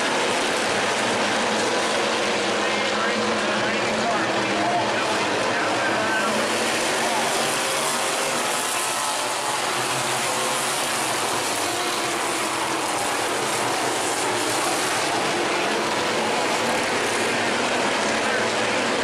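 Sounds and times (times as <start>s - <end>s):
race car engines: 0.0s - 19.0s.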